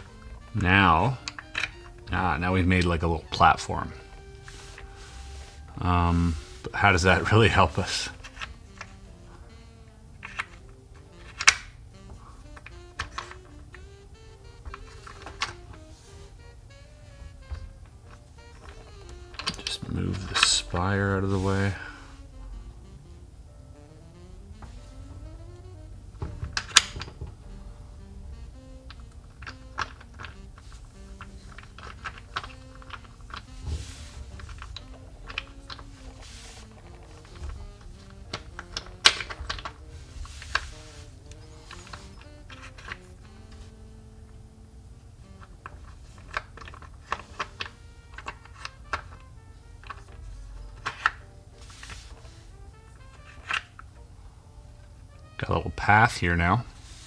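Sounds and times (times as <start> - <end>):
wooden blocks clicking and knocking: 0.0 - 5.0, 5.6 - 22.0, 26.2 - 27.4, 28.8 - 44.5, 45.2 - 54.0
soft background music: 0.0 - 57.0.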